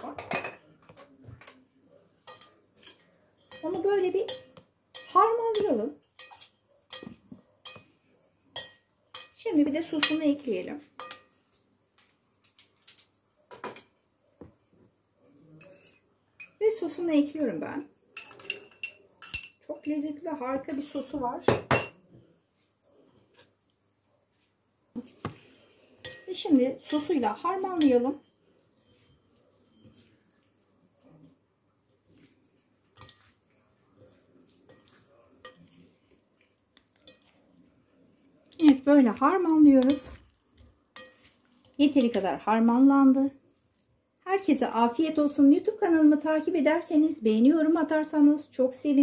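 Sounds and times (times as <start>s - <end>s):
plastic forks tossing salad: 28.9s - 42.8s.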